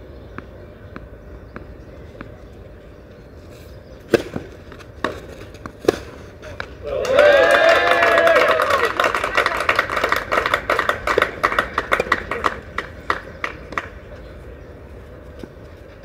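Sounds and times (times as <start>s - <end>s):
loud cheering shout: 6.8s - 10.3s
spectators clapping: 6.8s - 14.0s.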